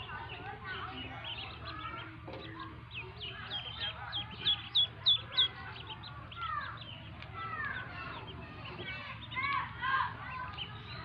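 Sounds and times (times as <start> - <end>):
ducklings peeping: 0.0 - 11.0.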